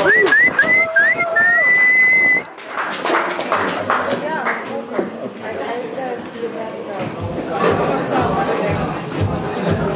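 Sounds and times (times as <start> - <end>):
person whistling loudly: 0.0 - 2.5.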